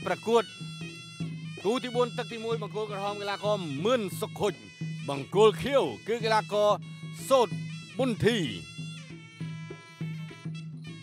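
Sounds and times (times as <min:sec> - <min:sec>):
commentator speaking: 0:00.0 - 0:00.5, 0:01.6 - 0:08.7
nasal oboe melody: 0:00.0 - 0:11.0.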